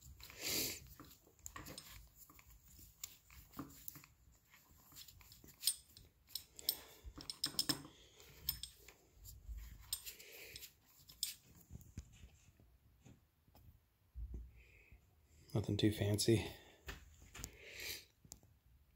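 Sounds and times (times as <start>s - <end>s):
rope rustling: 0.0s - 7.6s, 8.2s - 12.5s.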